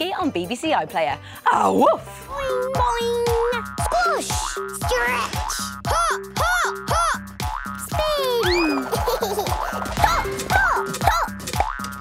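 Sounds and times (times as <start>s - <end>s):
bouncy children's music: 0.0s - 12.0s.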